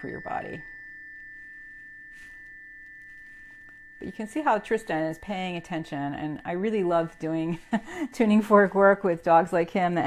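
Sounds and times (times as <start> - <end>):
faint low tuning fork tone: 0.0 - 10.0
high tuning fork tone: 0.0 - 10.0.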